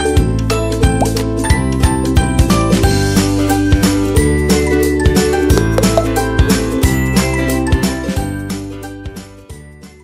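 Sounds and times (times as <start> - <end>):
light background music with beat: 0.0 - 8.8.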